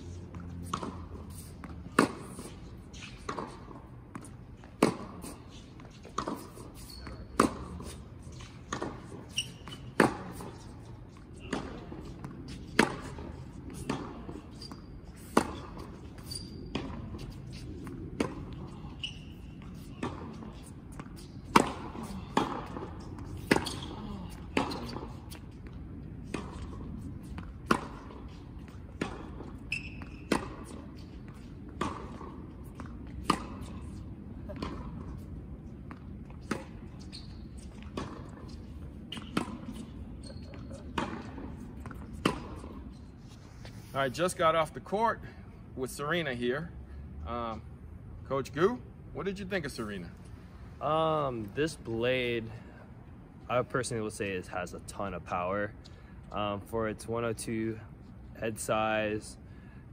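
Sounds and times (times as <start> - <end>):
tennis ball bouncing on court: 0.1 - 43.1
racket striking tennis ball: 0.3 - 43.0.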